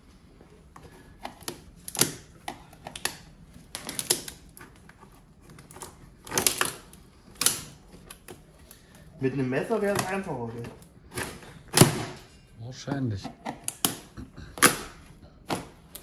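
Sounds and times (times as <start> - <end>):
cardboard and tape ripping: 3.0 - 8.5.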